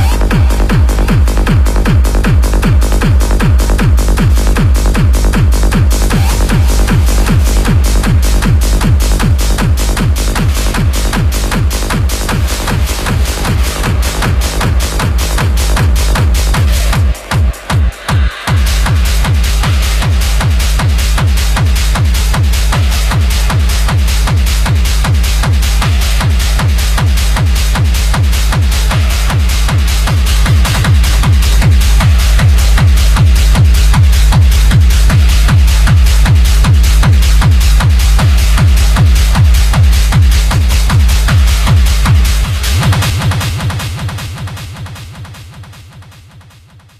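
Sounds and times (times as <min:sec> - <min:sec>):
techno music with kick drum: 0:00.0 - 0:46.9.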